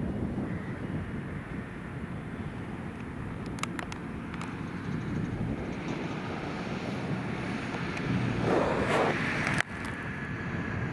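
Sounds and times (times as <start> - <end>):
tractor engine and running gear: 0.0 - 10.9.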